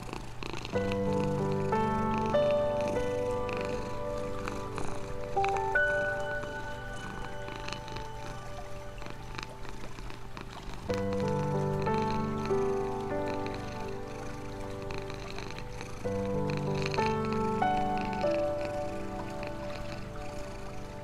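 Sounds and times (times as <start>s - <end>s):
cat purring: 0.0s - 21.0s
slow relaxation music: 0.0s - 21.0s.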